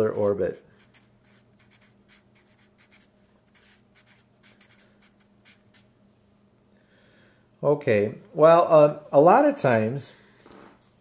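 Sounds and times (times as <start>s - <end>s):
marker writing on paper: 0.0s - 5.9s.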